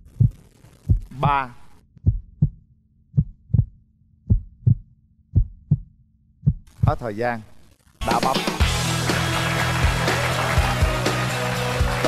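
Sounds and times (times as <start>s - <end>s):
heartbeat thumps: 0.1s - 1.4s, 2.0s - 7.0s.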